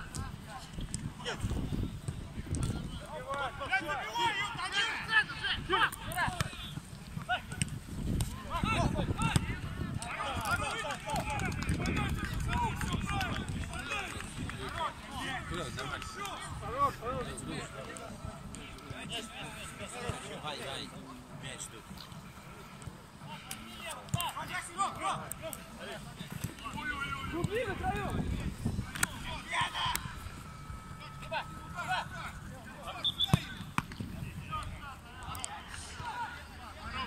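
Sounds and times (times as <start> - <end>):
players shouting: 23.3 - 37.0.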